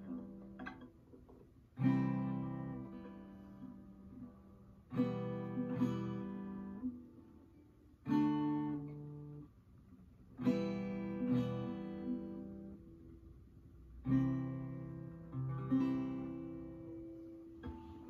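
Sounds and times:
acoustic guitar strummed slowly: 0:00.0 - 0:18.0.

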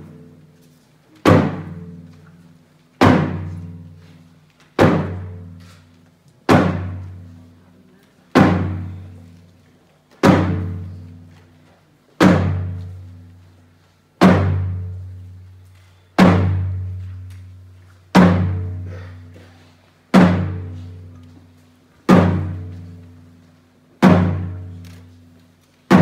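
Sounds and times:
frame drum deep booms: 0:01.2 - 0:02.0, 0:03.0 - 0:04.0, 0:04.8 - 0:05.6, 0:06.5 - 0:07.3, 0:08.4 - 0:09.2, 0:10.2 - 0:11.1, 0:12.2 - 0:13.2, 0:14.2 - 0:15.2, 0:16.2 - 0:17.0, 0:18.1 - 0:18.9, 0:20.1 - 0:21.1, 0:22.1 - 0:23.0, 0:24.0 - 0:24.8.

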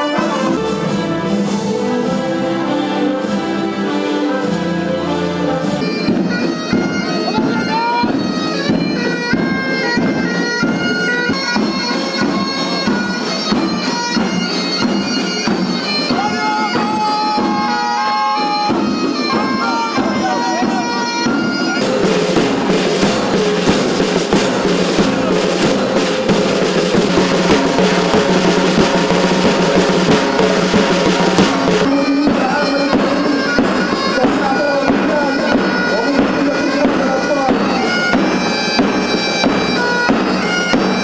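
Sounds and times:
bagpipes playing a melody: 0:00.0 - 0:41.0
drums and cymbals beat: 0:00.0 - 0:41.0.

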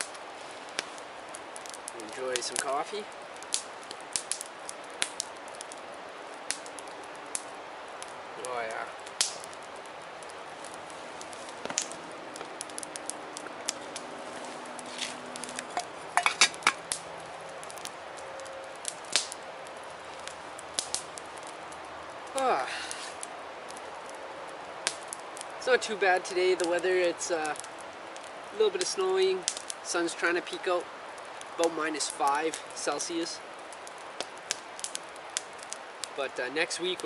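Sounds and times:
campfire crackling and popping: 0:00.0 - 0:37.0.

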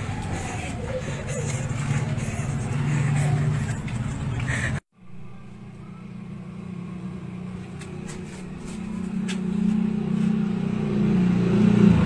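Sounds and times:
vehicle engine idling: 0:00.0 - 0:10.7.

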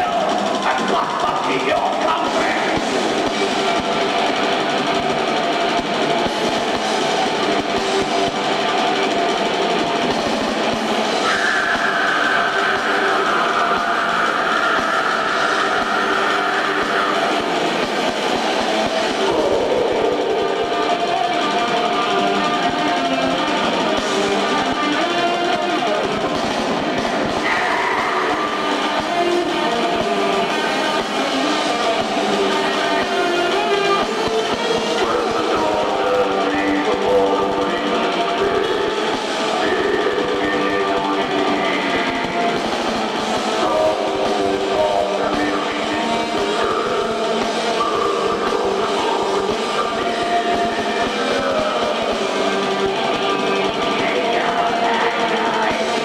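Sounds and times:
metal band playing live: 0:00.0 - 0:56.0.

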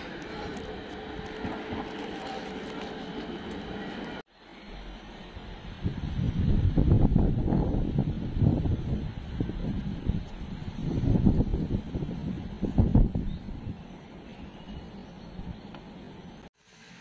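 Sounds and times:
street background noise: 0:00.0 - 0:16.5
wind buffeting microphone: 0:05.7 - 0:13.9.

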